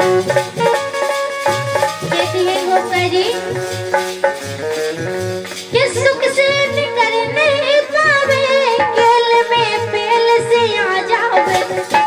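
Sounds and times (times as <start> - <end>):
held instrumental tones: 0.0 - 12.0
low drum beat: 0.0 - 12.0
woman singing folk song: 2.1 - 3.5, 5.7 - 12.0.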